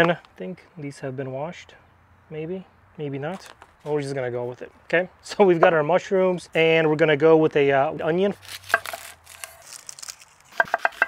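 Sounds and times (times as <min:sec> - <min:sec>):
knife cutting onion: 0:08.3 - 0:11.0.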